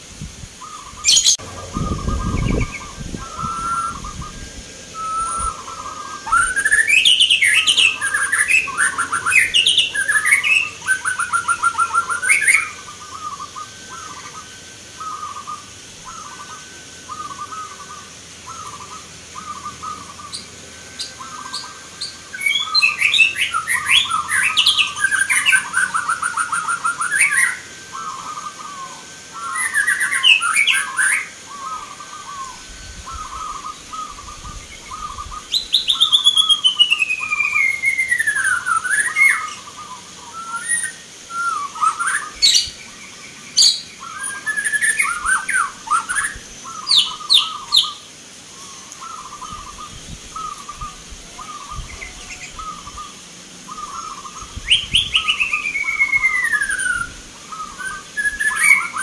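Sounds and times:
doves cooing: 0.0 - 59.0
rapid chirping birdsong: 0.0 - 59.0.

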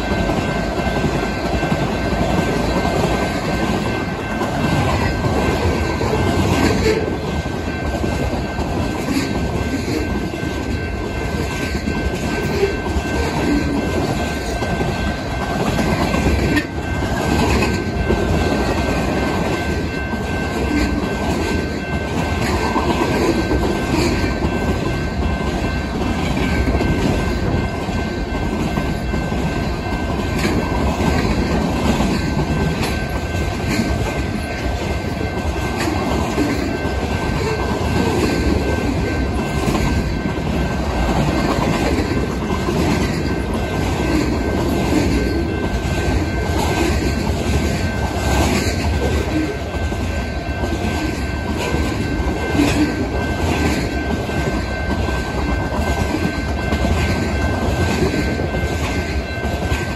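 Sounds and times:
steel wheels rumbling on rail: 0.0 - 59.9
wheels clicking over rail joints: 0.0 - 59.9.

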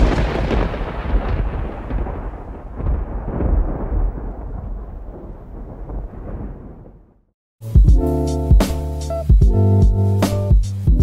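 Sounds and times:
heavy rain falling: 0.0 - 6.8.

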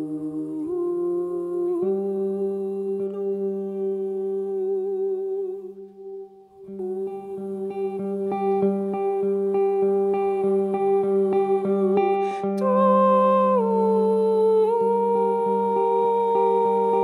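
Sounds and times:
woman singing a held note: 0.0 - 17.0.

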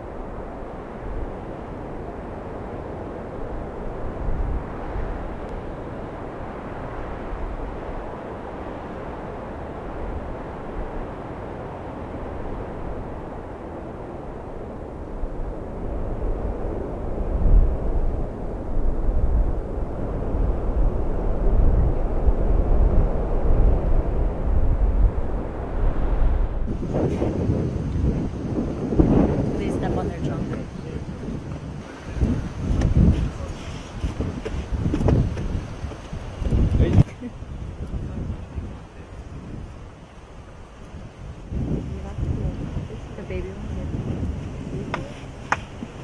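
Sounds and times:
steady rumbling noise: 0.0 - 46.0
wind buffeting microphone: 0.0 - 46.0.

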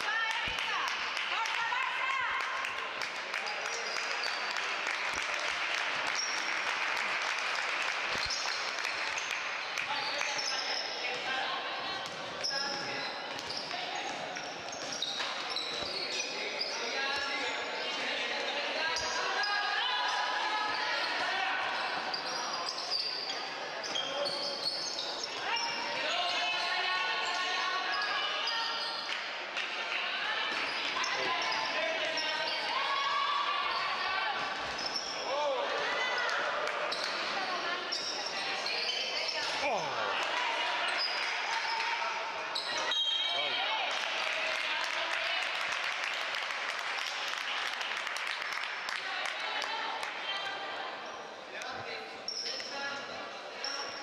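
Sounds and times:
voices of players and spectators: 0.0 - 54.0.

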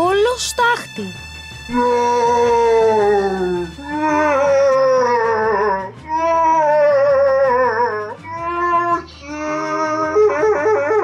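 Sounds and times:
background music with low beat: 0.0 - 11.0
howling scream: 1.7 - 11.0.

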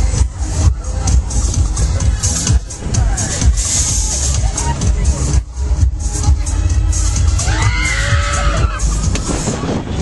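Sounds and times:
fairground music with heavy bass: 0.0 - 10.0.

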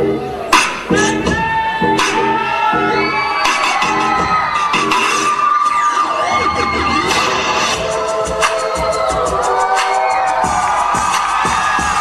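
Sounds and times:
audience cheering and shouting: 0.0 - 12.0
loud dance music: 0.0 - 12.0.

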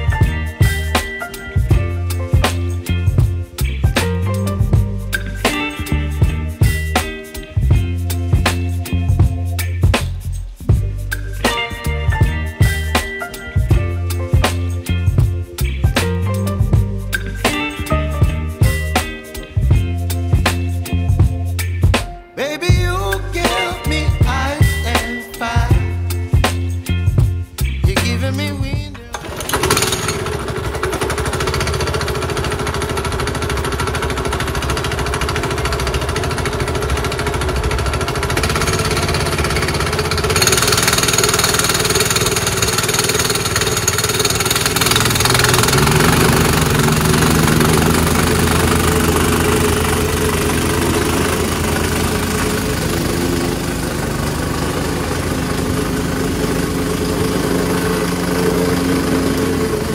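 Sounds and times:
plate compactor engine running: 0.0 - 7.1, 29.0 - 59.9
background music: 0.0 - 30.5, 44.5 - 59.9.

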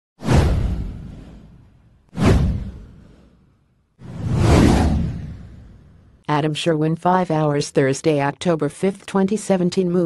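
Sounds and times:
deep rumbling whoosh: 0.2 - 6.2.

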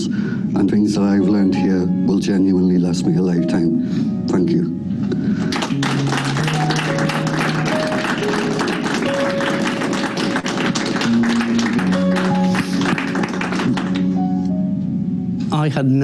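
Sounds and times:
music of slow held notes: 0.0 - 16.0
people applauding: 5.4 - 14.3.

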